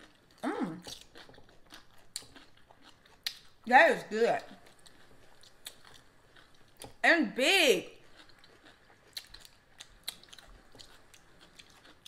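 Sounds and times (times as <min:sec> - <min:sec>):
crunchy chewing: 0:00.0 - 0:03.7, 0:04.4 - 0:07.0, 0:08.0 - 0:12.0.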